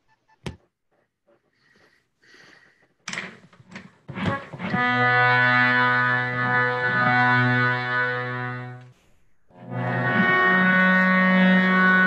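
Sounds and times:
harmonium drone: 4.1s - 8.9s, 9.6s - 12.0s.

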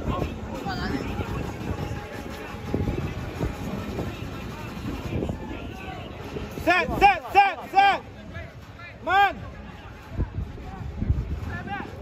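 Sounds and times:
wind rumbling on microphone: 0.0s - 7.3s, 8.1s - 12.0s.

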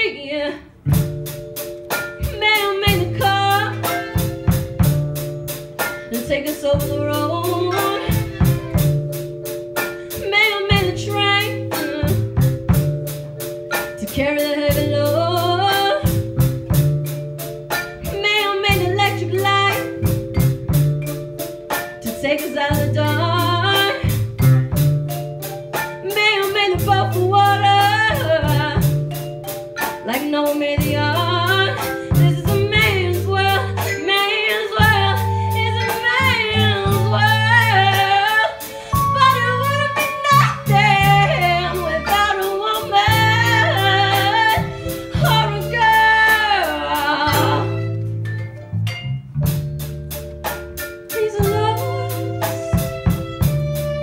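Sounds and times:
woman singing into a microphone: 0.0s - 0.7s, 2.2s - 3.9s, 6.1s - 8.2s, 10.2s - 12.2s, 14.0s - 16.1s, 18.1s - 19.8s, 22.0s - 24.2s, 26.0s - 28.9s, 30.0s - 47.8s, 51.1s - 52.7s
marimba: 0.9s - 54.0s
percussion beat: 0.9s - 54.0s
violins: 2.2s - 10.1s, 30.8s - 48.9s, 51.3s - 54.0s.

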